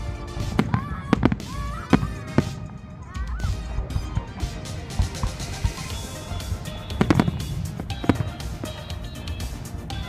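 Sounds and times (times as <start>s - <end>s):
fireworks rumble: 0.0s - 10.0s
whistling fireworks gliding: 0.0s - 10.0s.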